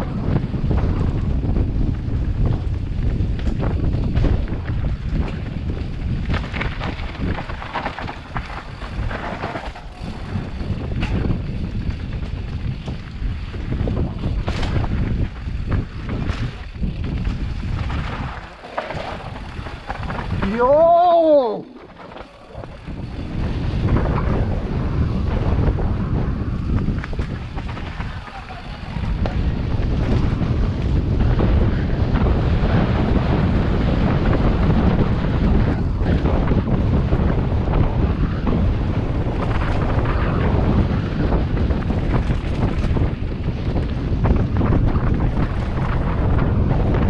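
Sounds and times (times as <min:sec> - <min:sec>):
wind buffeting microphone: 0:00.0 - 0:47.0
bike knocks and rattles: 0:00.1 - 0:47.0
tyres rolling over dirt and stones: 0:00.1 - 0:47.0.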